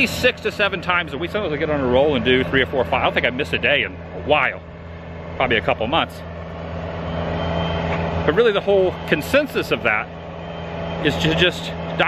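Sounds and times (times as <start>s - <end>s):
vehicle engine humming: 0.0s - 12.0s.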